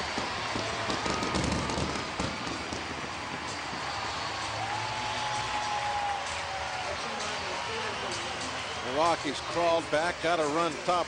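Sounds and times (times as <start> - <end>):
crowd cheering: 0.0 - 11.0.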